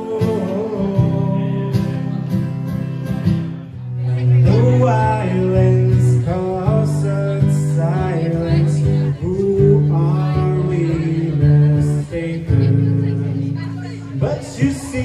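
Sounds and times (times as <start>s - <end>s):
man singing into a microphone: 0.0s - 3.0s, 4.0s - 15.0s
acoustic guitar strumming chords: 0.0s - 15.0s.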